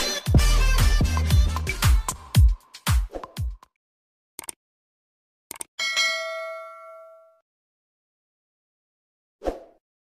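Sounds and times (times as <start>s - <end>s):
notification bell ding: 5.8s - 7.4s.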